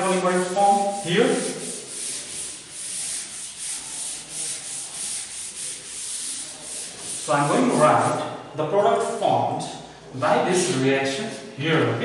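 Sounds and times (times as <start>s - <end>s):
duster wiping a chalkboard: 0.0s - 8.2s, 8.9s - 9.3s.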